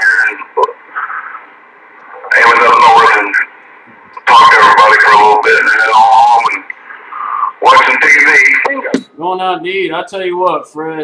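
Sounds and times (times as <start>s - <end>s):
voice over radio speaker: 0.0s - 3.5s, 4.2s - 9.0s.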